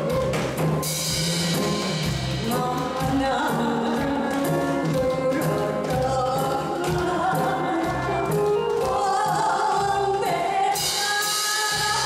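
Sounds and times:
backing track with steady beat: 0.0 - 12.0
woman singing into a microphone: 1.3 - 12.0.

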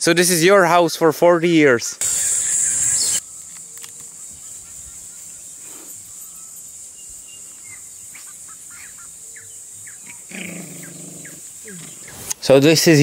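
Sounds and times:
high insect drone: 2.0 - 13.0.

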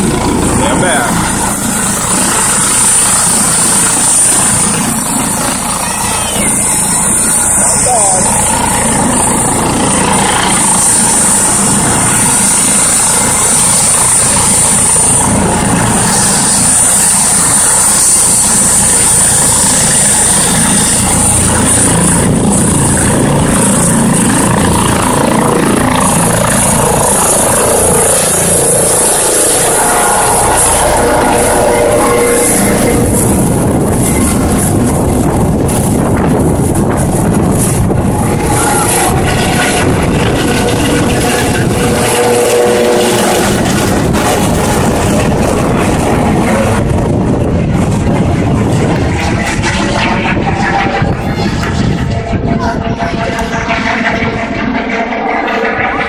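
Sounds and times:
helicopter engine and rotor: 0.0 - 56.0.

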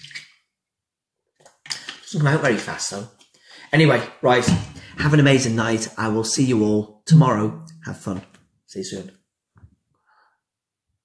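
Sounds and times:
person breathing: 3.3 - 3.8, 4.7 - 5.0, 9.9 - 10.6.

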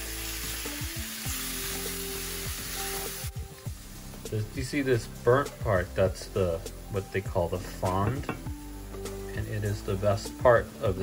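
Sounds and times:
tomatoes sizzling in oil: 0.0 - 11.0.

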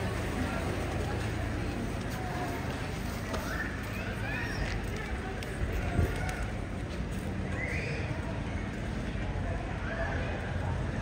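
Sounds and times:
crowd murmur: 0.0 - 11.0
traffic: 0.0 - 11.0.

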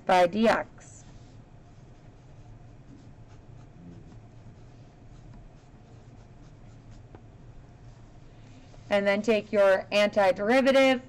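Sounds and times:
low steady hum: 0.0 - 11.0
pen scratching on paper: 0.4 - 7.2.

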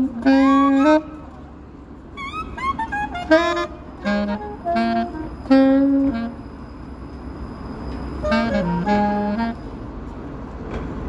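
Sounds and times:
saxophone playing: 0.0 - 1.4, 2.1 - 6.5, 8.2 - 9.7.

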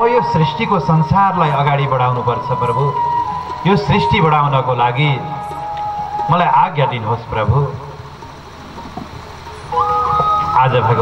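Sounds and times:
held electronic keyboard notes: 0.0 - 11.0
low hum from sound system: 0.0 - 11.0.

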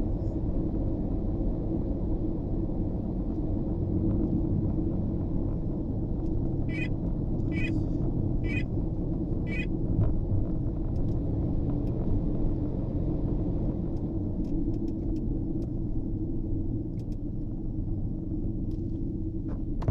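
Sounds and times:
vehicle engine and road rumble: 0.0 - 19.9.

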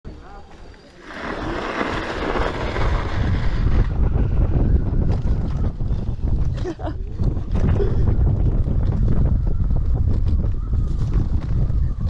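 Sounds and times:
wind rushing over microphone: 1.0 - 12.0.

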